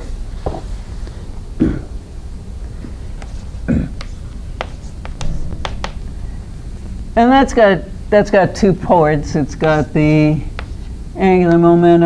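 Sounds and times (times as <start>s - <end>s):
low room hum: 0.0s - 12.0s
chalk tapping on blackboard: 3.2s - 3.4s, 4.0s - 6.0s, 9.6s - 9.9s, 10.5s - 10.9s.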